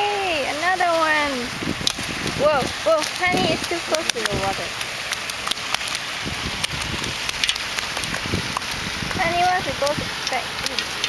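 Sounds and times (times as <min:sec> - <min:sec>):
fish flopping in a net: 0:00.6 - 0:09.1.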